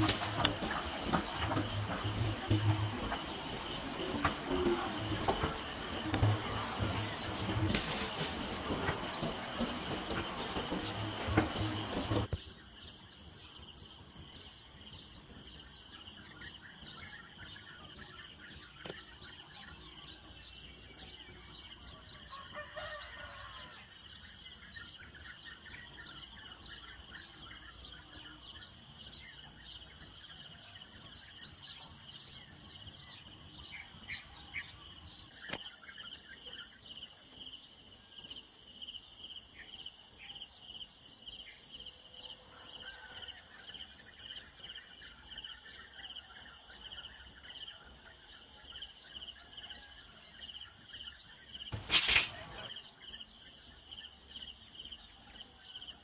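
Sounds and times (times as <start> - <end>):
insects chirping: 0.0 - 56.0.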